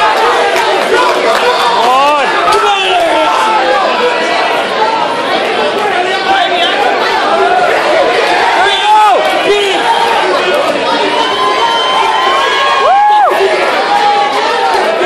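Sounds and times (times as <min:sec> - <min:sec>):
crowd shouting and cheering: 0:00.0 - 0:15.0.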